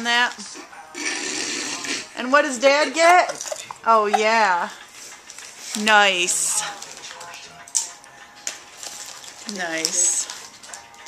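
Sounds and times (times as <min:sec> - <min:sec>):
potato chips being chewed: 0:04.8 - 0:11.0.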